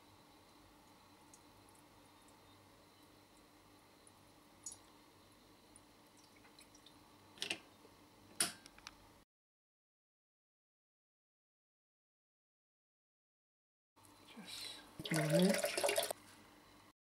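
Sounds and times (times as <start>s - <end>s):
water trickling and dripping: 5.7s - 7.0s.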